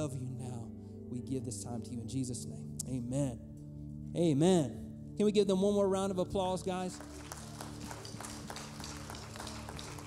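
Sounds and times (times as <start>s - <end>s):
audience applause: 7.0s - 10.0s.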